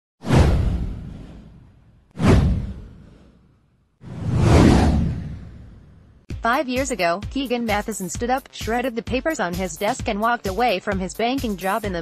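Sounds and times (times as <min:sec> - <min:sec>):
whoosh with deep rumble: 0:00.2 - 0:06.3.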